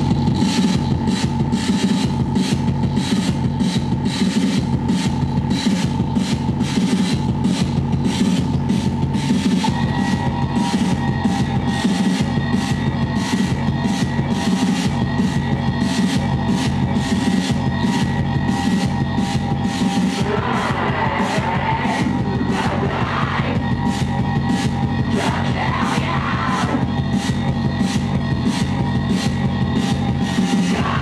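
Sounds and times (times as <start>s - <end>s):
electronic noise music: 0.0s - 31.0s.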